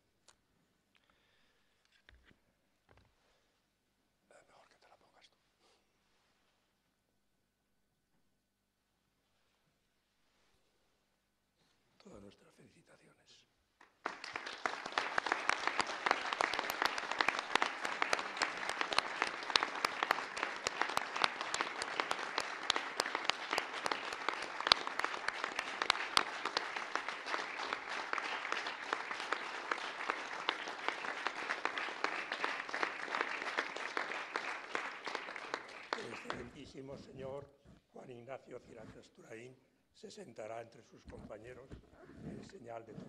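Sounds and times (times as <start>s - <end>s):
audience applause: 13.8s - 37.4s.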